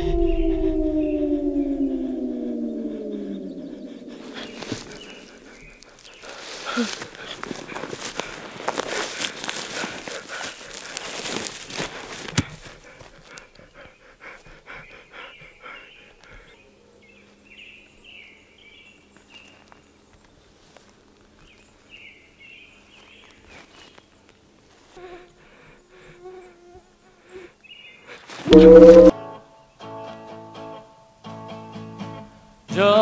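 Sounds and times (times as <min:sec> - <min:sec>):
faint chirps: 0:00.0 - 0:06.9, 0:28.5 - 0:29.1
rustling and footsteps on grass: 0:04.1 - 0:13.6, 0:18.8 - 0:25.4.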